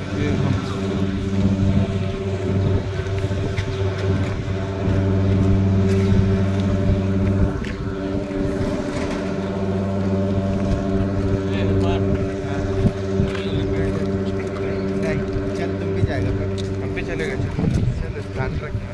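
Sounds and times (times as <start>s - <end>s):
low machine hum: 0.0s - 18.9s.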